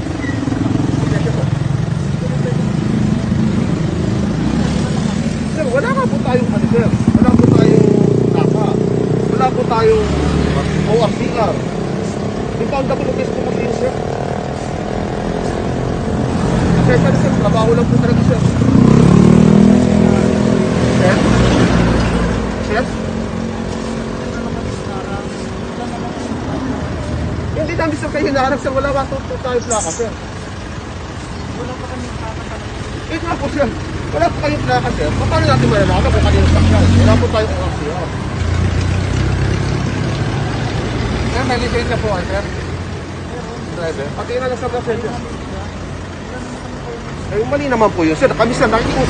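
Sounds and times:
indistinct voices: 0.0 - 49.0
road traffic rumble: 0.0 - 49.0
vehicle engine idling: 20.2 - 49.0.

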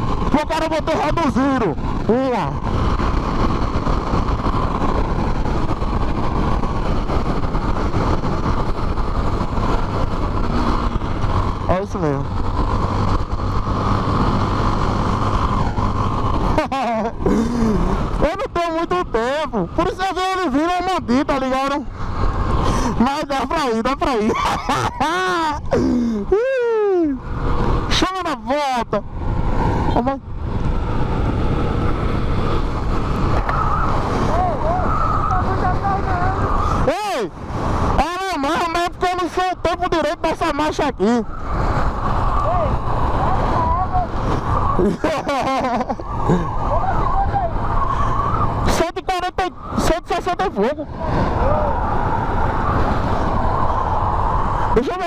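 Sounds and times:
motorcycle engine at speed: 0.0 - 55.0
wind rush over microphone: 0.0 - 55.0
people laughing and shouting: 24.2 - 27.2, 44.8 - 46.5.

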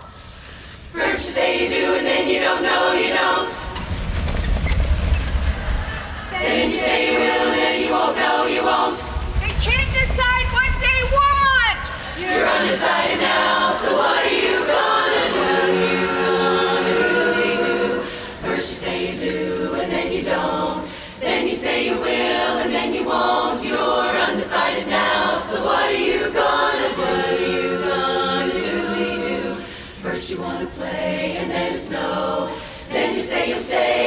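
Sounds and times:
women's chorus singing a cappella: 0.0 - 4.0, 5.8 - 9.4, 11.6 - 34.0.

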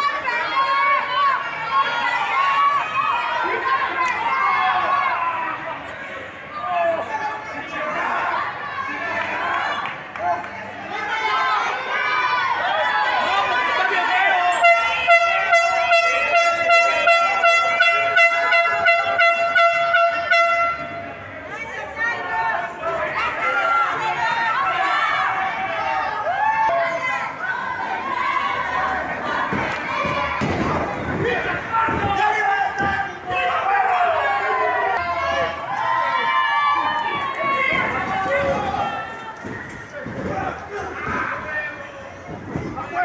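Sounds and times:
spectators shouting: 0.0 - 43.0
horn pulsing steady note: 14.6 - 21.1.

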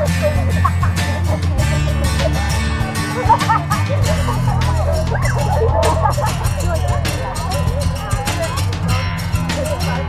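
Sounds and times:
background music with steady beat: 0.0 - 10.0
girls chattering and laughing: 0.0 - 10.0.

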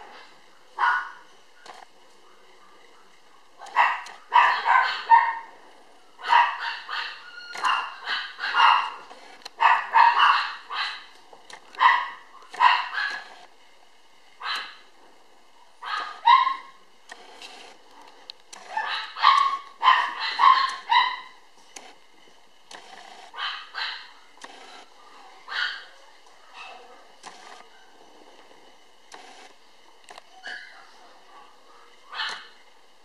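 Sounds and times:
puppy barking and yipping: 0.8 - 1.2, 3.6 - 5.5, 6.2 - 9.0, 9.6 - 11.1, 11.8 - 13.3, 14.4 - 14.8, 15.8 - 16.8, 18.7 - 21.4, 23.3 - 24.1, 25.5 - 25.9, 30.3 - 30.9, 32.1 - 32.5.

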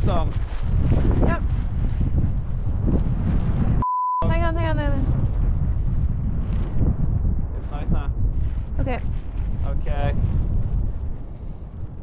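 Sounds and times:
wind buffeting microphone: 0.0 - 12.0
high censor bleep: 3.8 - 4.3.

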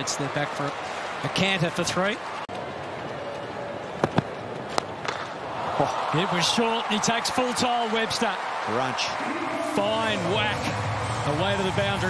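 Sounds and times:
stadium crowd murmur: 0.0 - 12.0.

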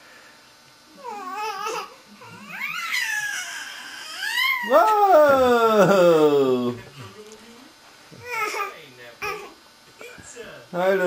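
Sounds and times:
baby squealing: 1.4 - 4.7.

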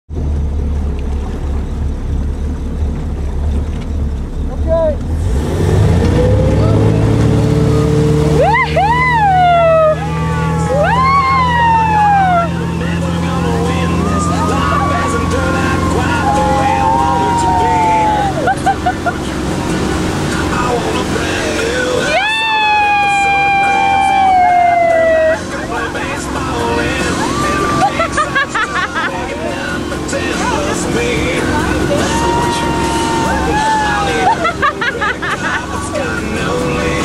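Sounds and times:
boat engine drone: 0.1 - 37.0
people cheering: 6.6 - 7.0, 7.6 - 19.4, 20.6 - 37.0.

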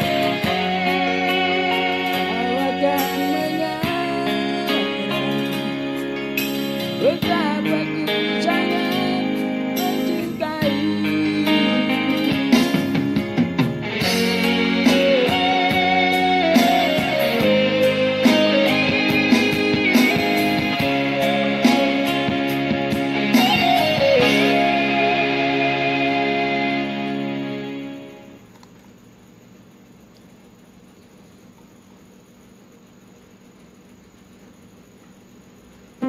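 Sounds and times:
instrumental backing track with guitar: 0.0 - 28.3.

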